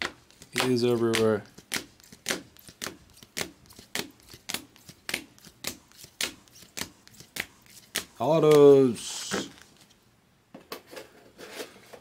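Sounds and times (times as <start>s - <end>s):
cards flicked snapping: 0.3s - 8.7s.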